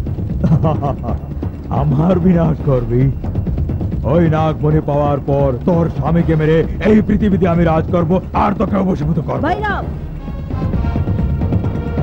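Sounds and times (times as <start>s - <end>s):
fire crackling: 0.0s - 11.6s
man laughing: 0.4s - 1.4s
man speaking: 4.0s - 9.8s.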